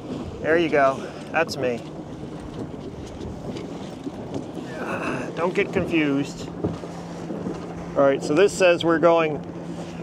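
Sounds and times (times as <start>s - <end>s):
water washing against boat hull: 0.0s - 10.0s
wind buffeting microphone: 0.0s - 10.0s.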